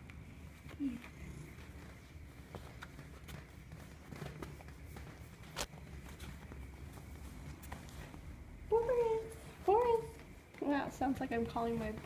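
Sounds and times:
cat purring: 0.0s - 12.0s.

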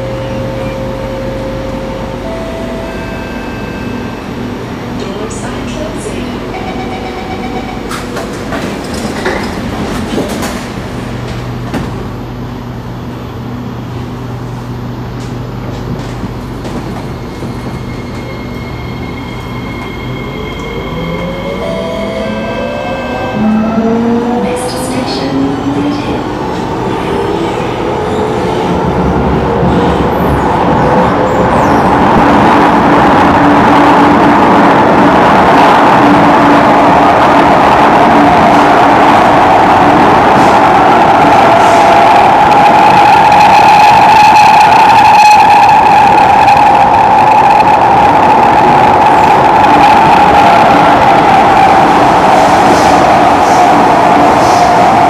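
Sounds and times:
faint high ringing tone: 0.0s - 4.3s
train rumble at speed: 0.0s - 55.0s.

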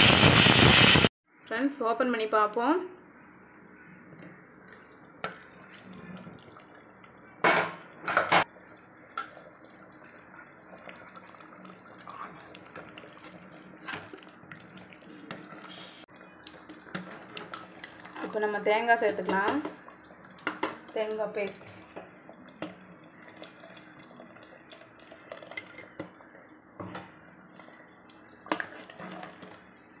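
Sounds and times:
pressure cooker bursts of noise: 0.0s - 1.1s
ladle stirring thick curry: 8.6s - 30.0s.

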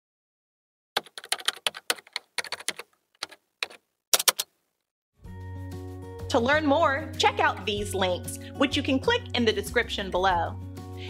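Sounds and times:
keyboard keystroke clicks: 1.0s - 4.5s.

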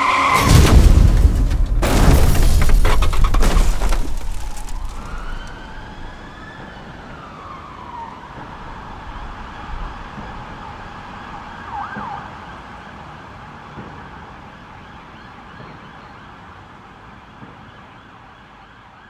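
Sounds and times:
emergency vehicle siren wailing: 4.2s - 19.0s.

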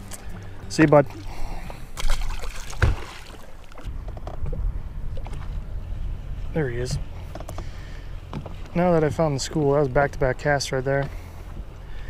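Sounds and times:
low wind rumble: 0.0s - 12.0s
small waves lapping against boat hull: 0.0s - 12.0s
fish splashing into water: 1.2s - 3.8s.

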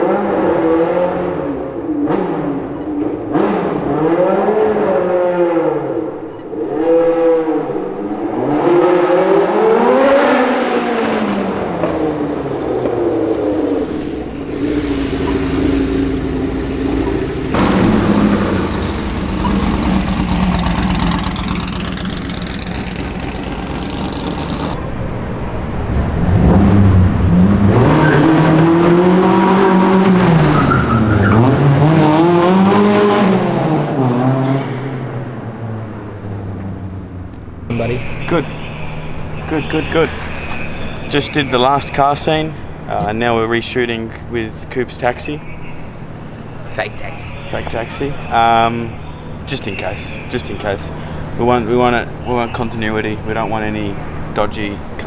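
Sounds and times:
race car engine revving: 0.0s - 24.8s, 25.8s - 42.4s.

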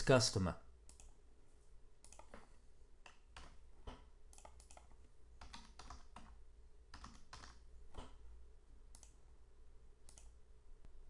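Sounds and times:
faint keyboard typing: 0.8s - 1.2s, 2.0s - 8.2s, 8.9s - 9.2s, 10.0s - 10.4s.

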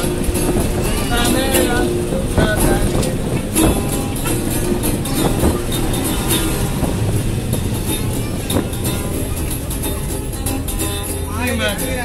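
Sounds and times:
acoustic guitar strumming: 0.0s - 12.0s
bus engine and road noise: 0.0s - 12.0s.

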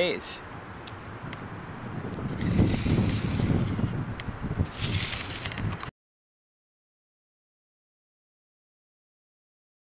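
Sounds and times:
wind buffeting microphone: 0.5s - 5.9s.

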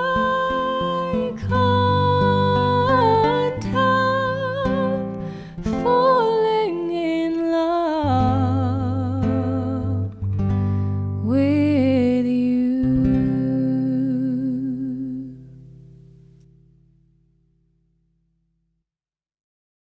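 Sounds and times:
woman singing: 0.0s - 10.2s, 11.2s - 15.6s
acoustic guitar: 0.0s - 17.9s.

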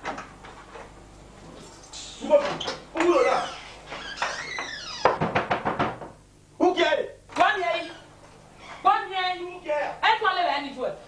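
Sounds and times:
rapid knocking on wooden door: 5.0s - 6.2s.

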